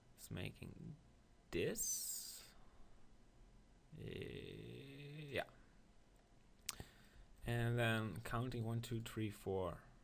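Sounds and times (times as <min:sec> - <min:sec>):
man saying uhh: 0:03.9 - 0:05.6.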